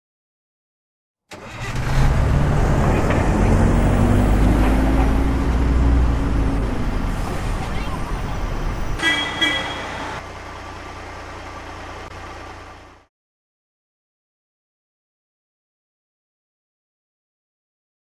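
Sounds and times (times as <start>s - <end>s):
bus engine running: 1.3s - 13.1s.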